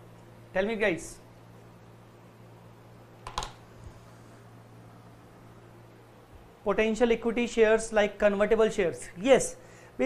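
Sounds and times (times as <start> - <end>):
low steady hum: 0.0 - 10.0
computer keyboard keystrokes: 3.2 - 3.6.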